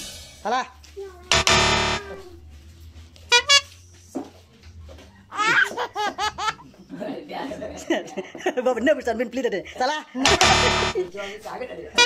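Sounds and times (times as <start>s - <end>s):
loud harsh buzzer: 1.3s - 2.4s, 3.3s - 3.6s, 10.2s - 11.4s
people laughing: 5.3s - 8.9s, 9.6s - 11.5s.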